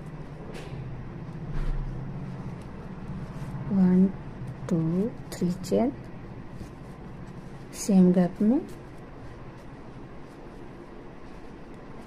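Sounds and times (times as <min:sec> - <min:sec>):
low mechanical hum: 0:00.0 - 0:12.0
low rumble: 0:00.0 - 0:12.0.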